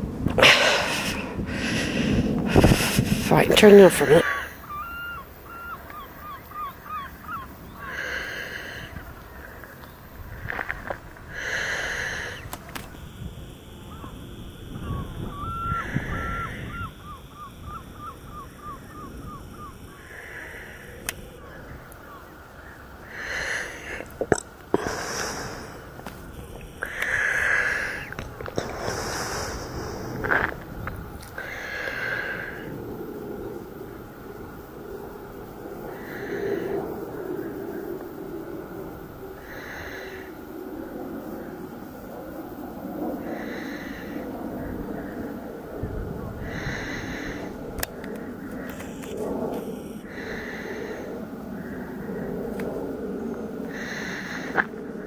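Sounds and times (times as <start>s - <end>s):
person breathing heavily: 0.4s - 3.3s, 7.8s - 12.5s, 20.0s - 21.4s, 22.7s - 26.1s, 26.7s - 30.6s, 31.3s - 32.8s, 35.9s - 36.9s, 39.4s - 40.5s, 43.2s - 45.7s, 46.3s - 55.0s
bird chirping: 4.2s - 8.0s, 13.7s - 20.1s
camera handling clicks: 12.5s - 13.0s, 47.8s - 49.2s.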